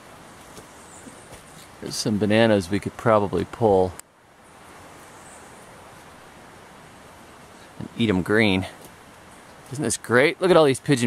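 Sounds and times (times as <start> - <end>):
outdoor ambience hiss: 0.0 - 11.0.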